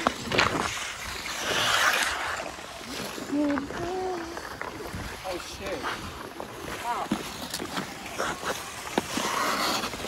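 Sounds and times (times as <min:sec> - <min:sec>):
faint voices of skaters: 0:00.0 - 0:06.0, 0:06.7 - 0:10.0
skate blades scraping on ice: 0:00.0 - 0:10.0.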